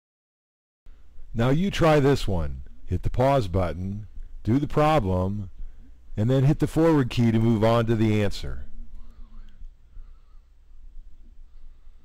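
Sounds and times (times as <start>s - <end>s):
faint low hum: 0.9s - 12.0s.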